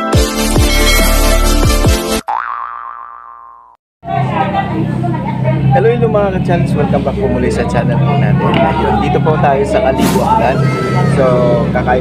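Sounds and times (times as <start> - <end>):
wobbling boing sound effect: 2.3 - 3.8
restaurant room noise: 4.0 - 12.0
voices: 4.1 - 12.0.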